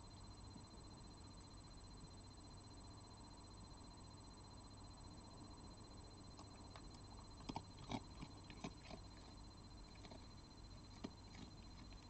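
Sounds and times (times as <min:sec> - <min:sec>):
fox chewing: 0:06.4 - 0:12.0.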